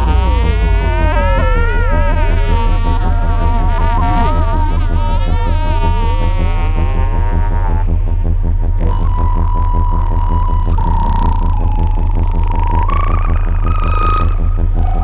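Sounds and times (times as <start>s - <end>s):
high held synth tone: 0.0s - 15.0s
throbbing low synth drone: 0.0s - 15.0s
whistling sweeping overtones: 8.8s - 15.0s.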